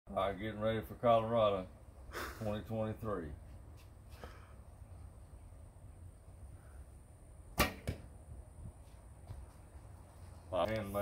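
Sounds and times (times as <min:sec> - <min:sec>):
arrow striking target: 0:07.5 - 0:08.2.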